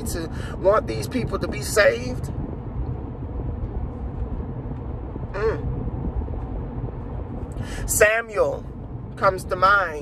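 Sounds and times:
car cabin rumble: 0.0s - 10.0s
man's wavering vocal sound: 5.4s - 5.6s.

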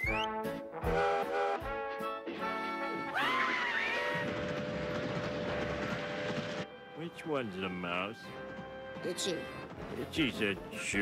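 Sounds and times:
cartoon scream rising and falling: 3.1s - 4.2s
train rumbling: 3.4s - 11.0s.

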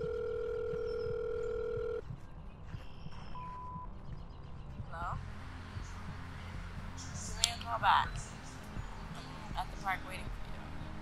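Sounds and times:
telephone ringback tone: 0.0s - 2.0s.

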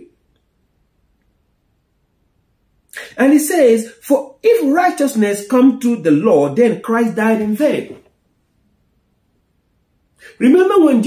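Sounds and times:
man speaking: 2.9s - 8.1s, 10.2s - 11.0s.

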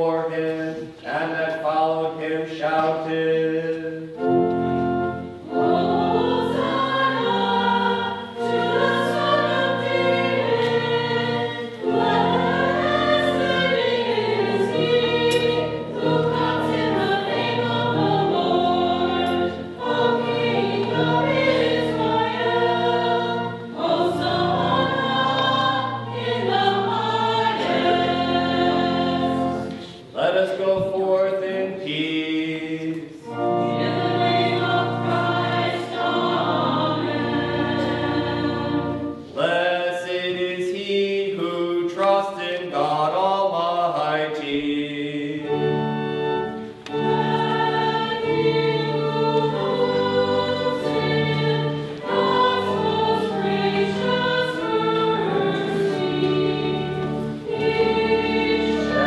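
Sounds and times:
choir singing a hymn: 0.0s - 59.0s.

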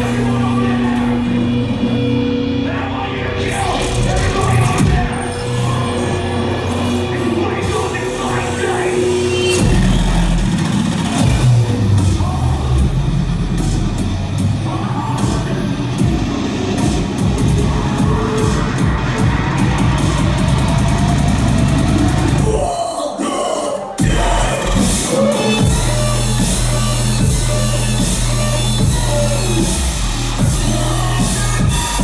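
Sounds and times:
dubstep music with heavy bass: 0.0s - 32.0s.

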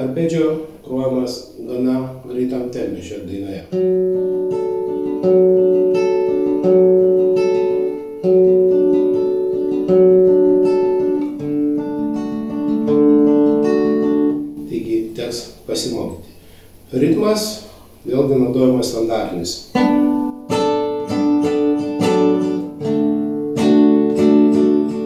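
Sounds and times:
fingerpicked nylon-string guitar: 2.7s - 25.0s.

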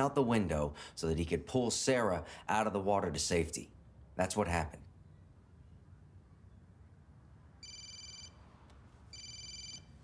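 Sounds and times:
electronic telephone ringing: 7.6s - 8.4s, 9.1s - 10.0s.

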